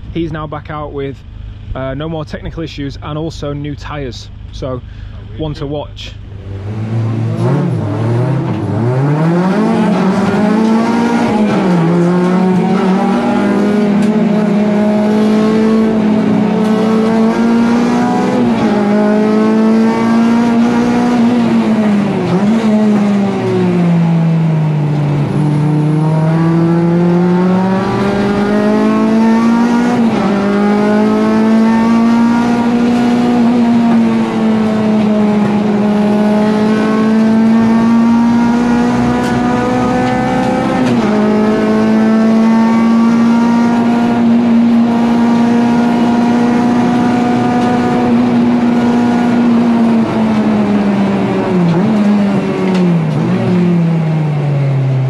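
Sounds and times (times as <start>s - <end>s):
race car engine at high revs: 0.0s - 55.0s.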